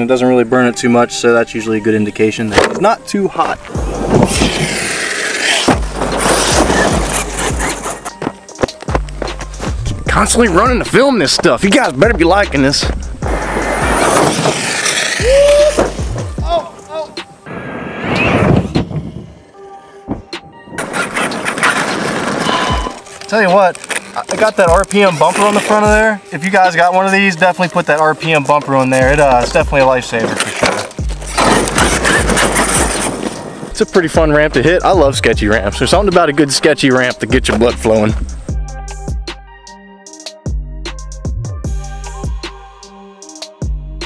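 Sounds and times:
rc truck tyres crunching gravel: 3.3 - 16.3, 20.8 - 33.7
toy truck motor and tyres: 3.8 - 8.1, 30.4 - 33.4.

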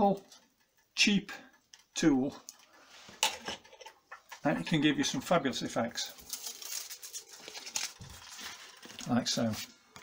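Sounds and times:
foil sheet rustling: 6.0 - 9.7.

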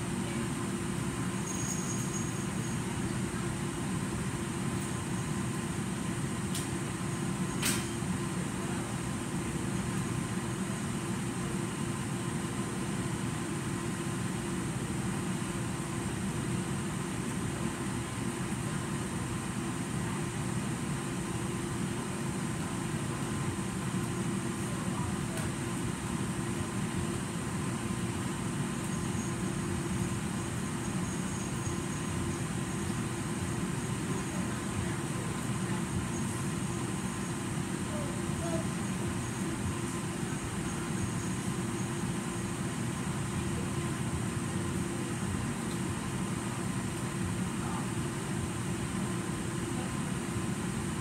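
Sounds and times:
heating system rumble and hum: 0.0 - 51.0.

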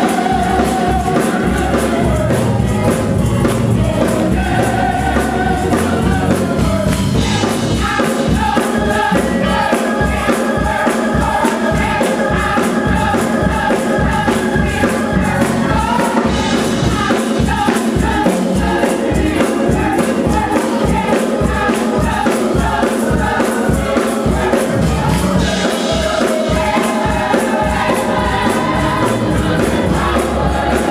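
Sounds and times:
gospel choir singing over a beat: 0.0 - 30.9.

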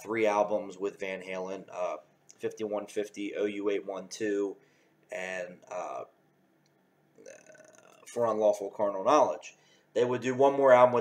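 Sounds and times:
man burping softly: 7.2 - 8.1.

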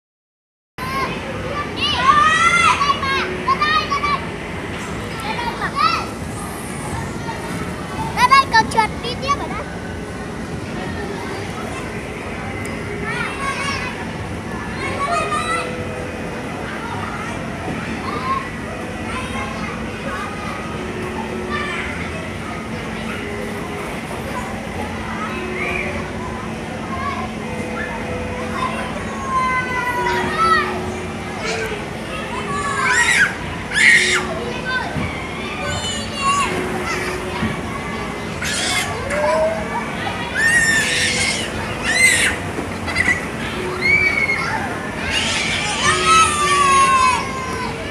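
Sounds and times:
children's high-pitched calls: 0.8 - 10.1, 10.8 - 47.9
children playing: 0.8 - 47.9
child squealing: 32.5 - 34.3, 38.4 - 39.6, 40.4 - 47.7.

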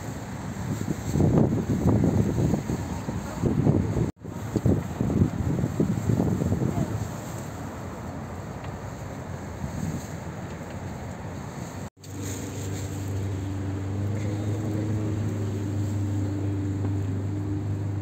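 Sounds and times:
boat engine drone: 0.0 - 18.0
wind on microphone: 0.0 - 18.0.

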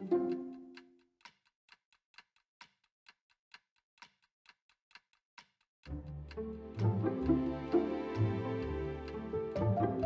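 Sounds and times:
string music: 0.0 - 0.8, 5.9 - 10.0
light irregular ticks: 0.0 - 10.0.

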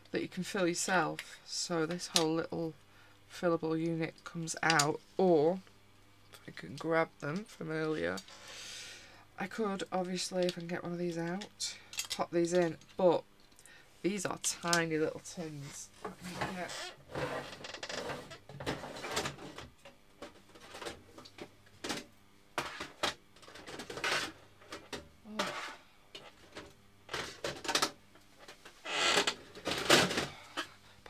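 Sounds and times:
chair creaking and squeaking: 16.1 - 19.7, 22.6 - 24.4, 25.3 - 25.8, 27.2 - 30.4.

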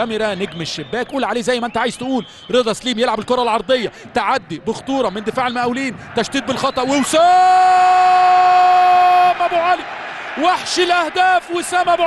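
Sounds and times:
commentator's long goal shout: 7.0 - 12.0.

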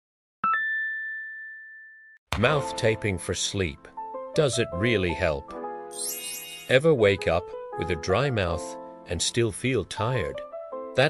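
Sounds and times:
bell-like ding: 0.4 - 1.9, 6.0 - 6.8.

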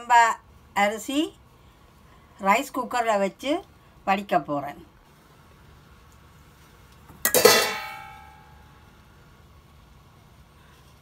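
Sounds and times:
metal pot clanging: 7.2 - 8.6.

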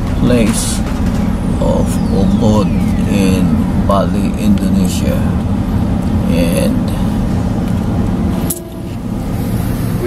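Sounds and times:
car engine rumble and road noise: 0.0 - 10.0.

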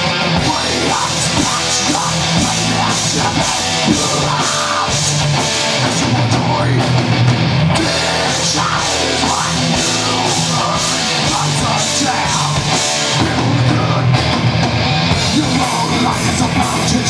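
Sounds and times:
bass guitar: 0.0 - 17.0
distorted electric guitars: 0.0 - 17.0.

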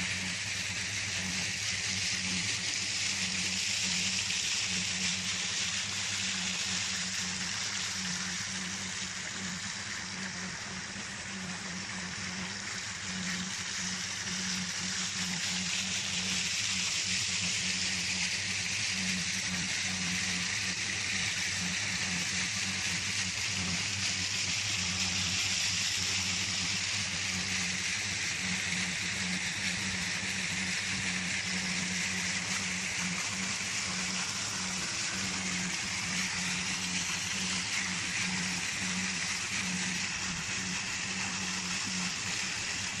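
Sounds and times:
pump humming: 0.0 - 43.0
water pouring: 13.4 - 43.0.

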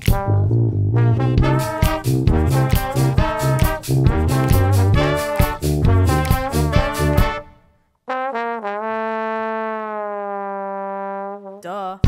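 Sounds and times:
trombone playing falling notes: 0.0 - 11.6.

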